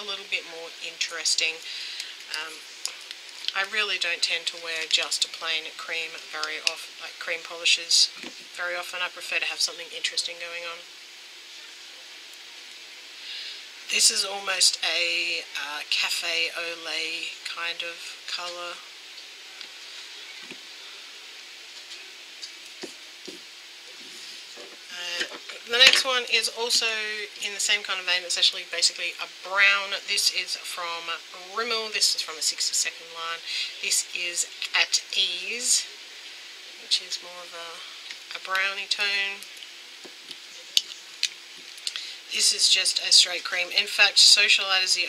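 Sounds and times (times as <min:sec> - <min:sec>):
electric fan hiss: 0:00.0 - 0:45.0.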